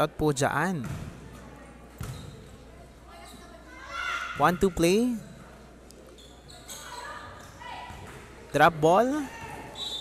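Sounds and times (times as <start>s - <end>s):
echoing gymnasium ambience: 0.0s - 10.0s.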